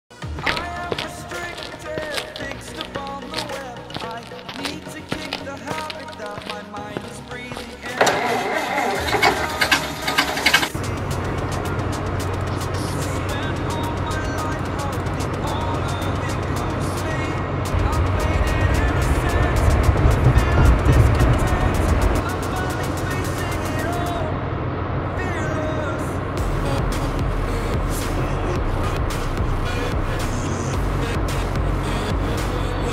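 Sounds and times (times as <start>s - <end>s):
background music: 0.1s - 32.9s
bus engine rumbling: 0.1s - 32.9s
voices: 0.4s - 24.5s.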